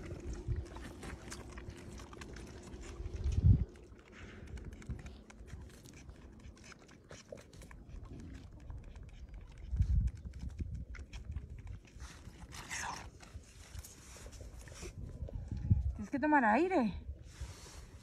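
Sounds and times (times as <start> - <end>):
lamb sucking at a bottle: 0.0 - 15.6.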